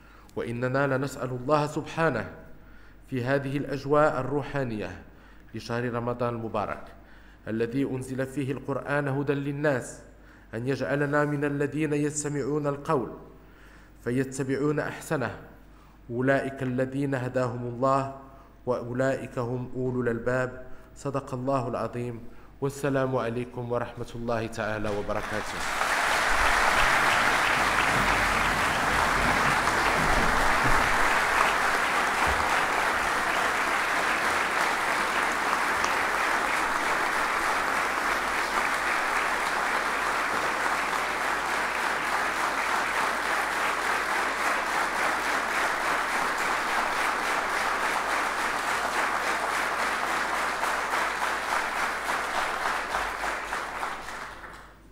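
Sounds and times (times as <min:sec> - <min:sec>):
crowd applauding: 0:24.8 - 0:54.8.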